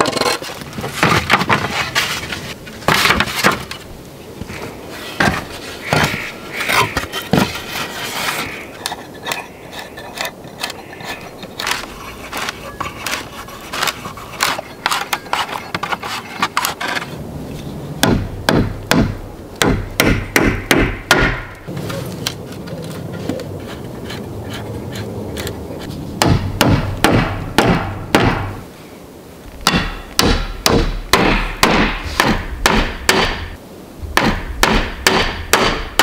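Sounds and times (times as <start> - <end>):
wooden shingles clattering: 0.0 - 3.9, 4.5 - 17.2
heavy wooden knocks: 18.0 - 21.6, 26.2 - 28.6, 29.6 - 33.6.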